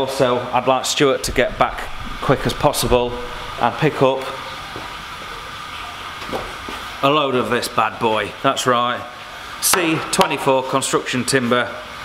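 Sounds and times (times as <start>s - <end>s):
steady background hiss: 0.0s - 12.0s
low hum: 1.2s - 7.0s.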